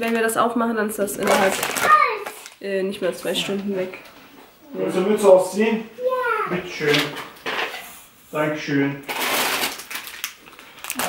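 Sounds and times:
plastic packaging crinkling: 1.2s - 2.6s, 9.0s - 11.0s.

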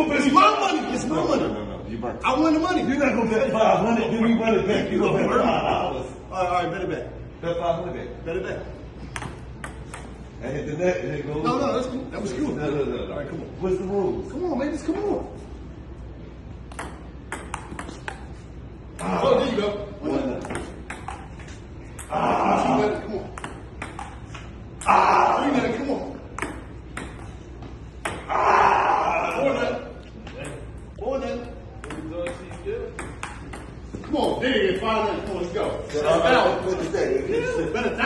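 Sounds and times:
table tennis ball clicking: 9.1s - 10.2s, 16.7s - 18.4s, 20.4s - 21.4s, 23.3s - 24.9s, 31.8s - 34.4s
table tennis ball pocks: 16.7s - 18.4s.

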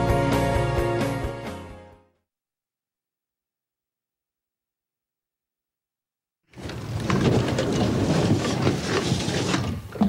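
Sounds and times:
elevator doors forced apart: 6.6s - 10.0s.

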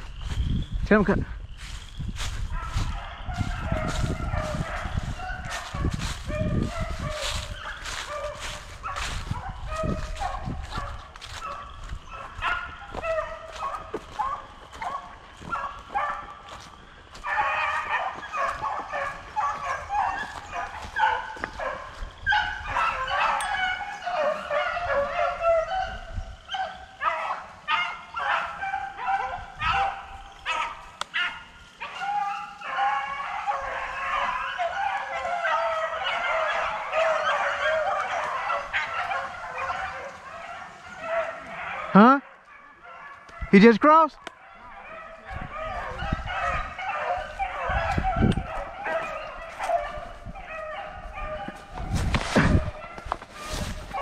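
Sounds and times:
beagles baying: 1.6s - 54.0s.

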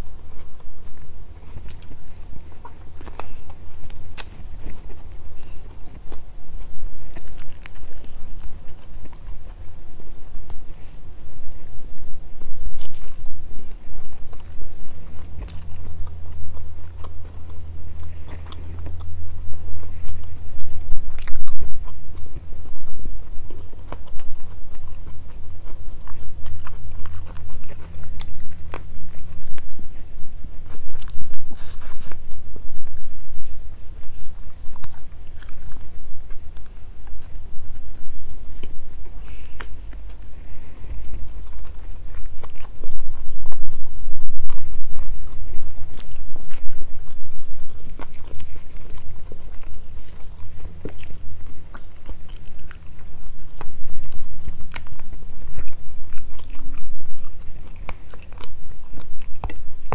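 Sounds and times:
chewing and biting food: 0.0s - 59.9s
steady low hum: 0.0s - 59.9s.

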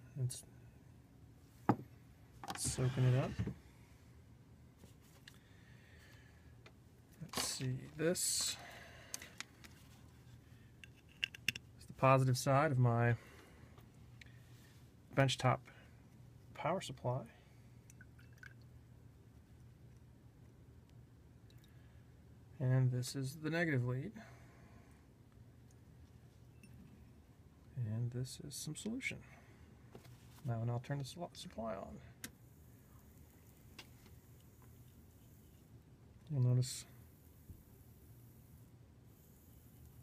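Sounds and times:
faint low hum: 0.0s - 40.0s.

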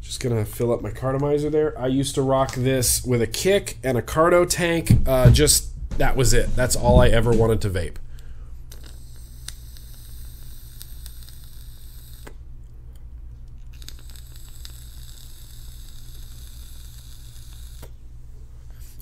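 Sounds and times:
steady low hum: 0.0s - 19.0s
e-cigarette draw hiss: 13.8s - 17.9s.

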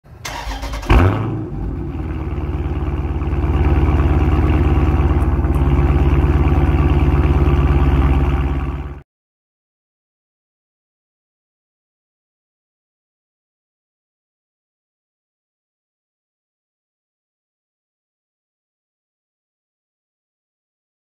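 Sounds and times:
car engine starter cranking: 0.1s - 1.3s
car engine idling: 0.1s - 9.0s.

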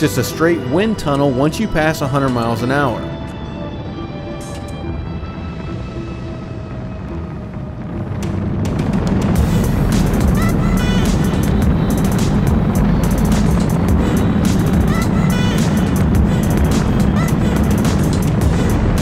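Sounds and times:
background music: 0.0s - 19.0s
boat engines droning: 0.0s - 19.0s.

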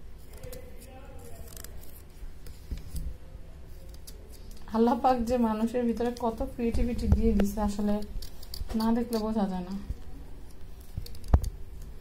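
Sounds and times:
carving tool scraping pumpkin: 0.3s - 2.1s.

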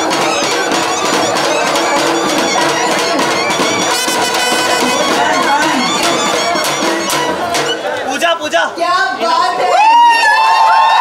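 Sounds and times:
clarinet: 0.0s - 8.0s
trumpet: 0.0s - 8.0s
brass band playing: 0.0s - 8.1s
drum: 0.0s - 8.4s.

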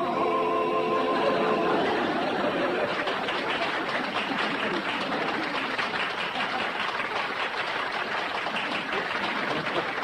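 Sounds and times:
audience applauding: 1.8s - 10.0s.

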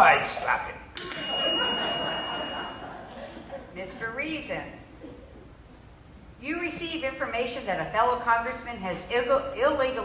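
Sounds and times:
small bell ringing: 1.0s - 3.0s.

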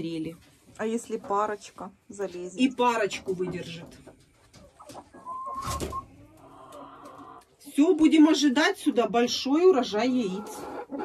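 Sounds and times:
hens clucking: 0.0s - 11.0s.

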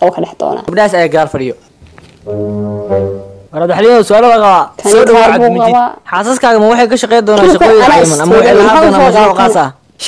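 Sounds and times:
low steady horn-like note: 2.2s - 3.6s.

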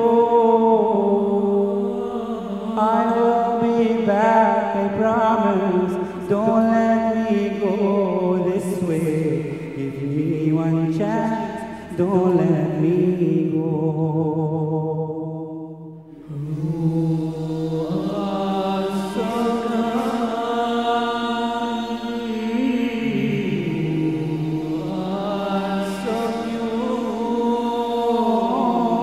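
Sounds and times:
male group singing chords: 0.0s - 29.0s.

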